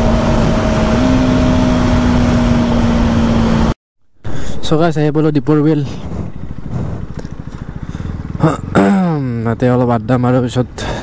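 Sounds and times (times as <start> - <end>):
motorcycle engine at low revs: 0.0 - 4.5, 5.4 - 11.0.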